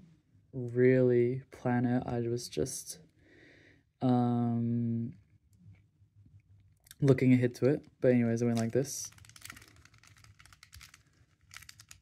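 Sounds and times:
plastic puzzle clicking: 8.5s - 12.0s.

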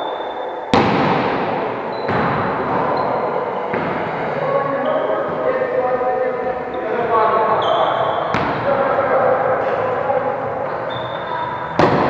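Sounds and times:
volleyball smacks echoing: 0.7s - 3.0s, 8.3s - 8.8s, 11.7s - 12.0s.

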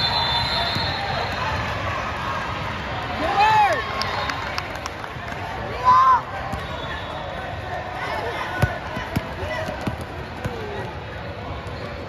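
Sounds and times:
crowd hubbub in a hall: 0.0s - 12.0s.

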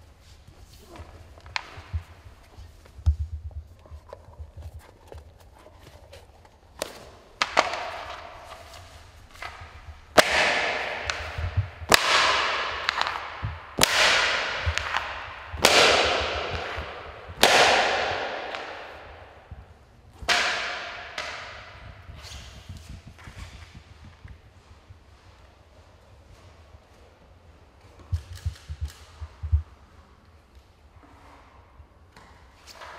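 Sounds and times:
echoing sharp cracks: 6.8s - 23.9s.

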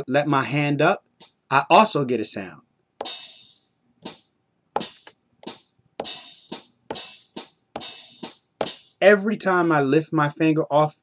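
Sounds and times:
hi-hat hits on drum pad: 3.0s - 4.2s, 4.8s - 9.0s.

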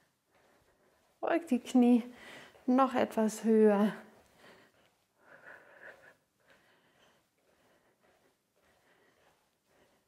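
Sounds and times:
faint breath: 2.1s - 2.6s, 4.2s - 10.0s.

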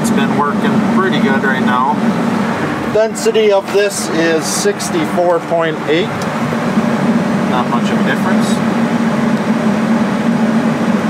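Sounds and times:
engine drone inside cab: 0.0s - 11.0s
man speaking: 2.9s - 6.2s, 7.5s - 8.7s.

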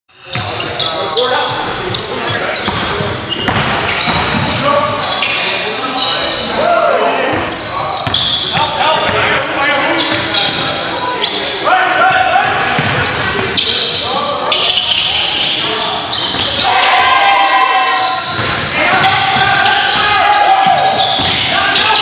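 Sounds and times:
players calling out: 0.3s - 22.0s
basketball bouncing on gym floor: 2.6s - 4.6s.

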